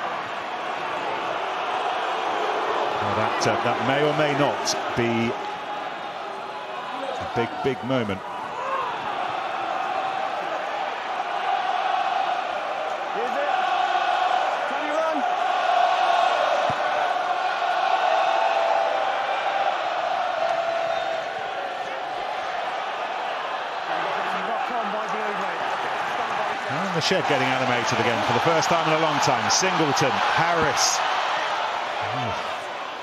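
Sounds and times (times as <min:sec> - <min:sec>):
stadium crowd chanting and cheering: 0:00.0 - 0:33.0.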